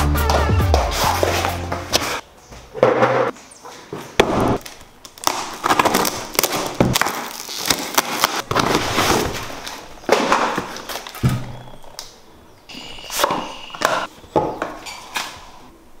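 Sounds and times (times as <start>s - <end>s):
background music with a beat: 0.0s - 2.2s
cardboard and packing tape ripping: 4.2s - 11.4s.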